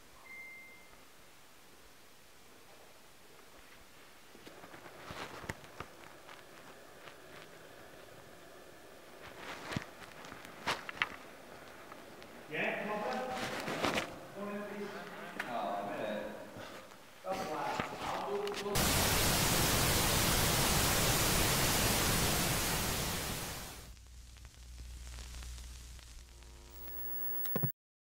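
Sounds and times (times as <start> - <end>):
tv static hiss: 0.9 - 27.7
low hum: 23.0 - 27.7.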